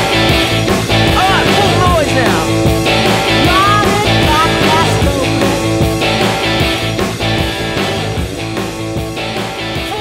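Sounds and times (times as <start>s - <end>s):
bass and drums beat: 0.0s - 10.0s
lead electric guitar bending notes: 0.0s - 10.0s.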